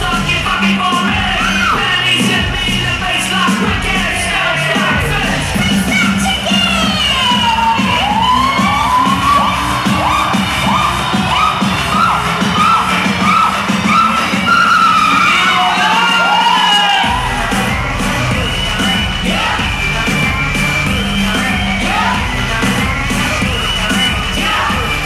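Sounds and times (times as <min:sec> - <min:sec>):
crowd cheering and shouting: 0:00.0 - 0:25.0
electronic hip-hop music: 0:00.0 - 0:25.0.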